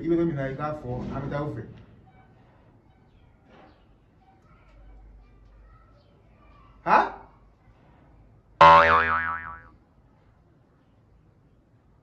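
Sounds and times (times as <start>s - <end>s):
cartoon upward glide: 8.6s - 9.6s
wobbling boing: 8.6s - 9.7s.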